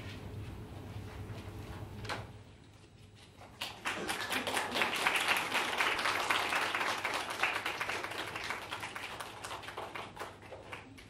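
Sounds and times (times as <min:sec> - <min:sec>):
small audience applauding: 0:03.4 - 0:11.0.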